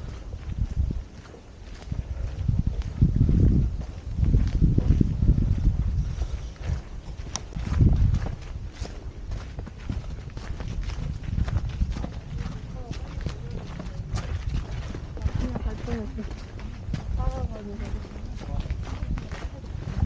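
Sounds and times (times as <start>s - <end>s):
footsteps on dirt trail: 0.0s - 20.0s
low microphone rumble: 0.0s - 20.0s.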